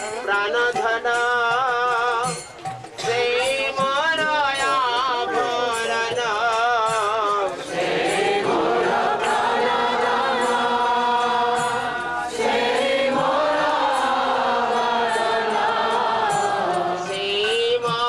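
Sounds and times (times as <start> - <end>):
group chanting devotional song: 1.9 - 18.0.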